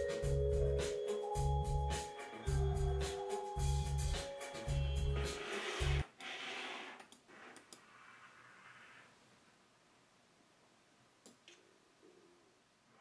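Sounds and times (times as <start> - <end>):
music with pulsing deep bass: 0.0 - 6.0
computer mouse clicks: 7.0 - 7.9.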